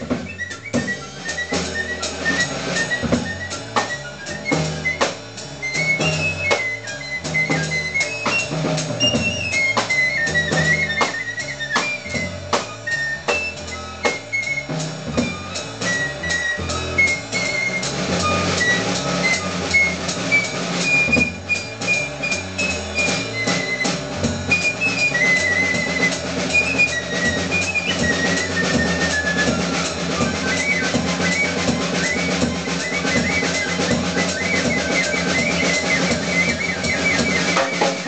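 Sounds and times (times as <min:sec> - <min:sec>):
double bass: 0:00.0 - 0:38.0
drum kit playing: 0:00.0 - 0:38.0
piccolo playing high notes: 0:00.0 - 0:38.0.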